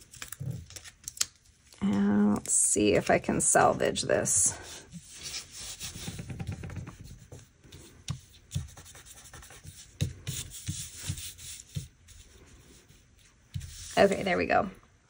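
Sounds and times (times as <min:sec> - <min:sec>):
fingertips rubbing paper sticker: 0:04.6 - 0:13.0.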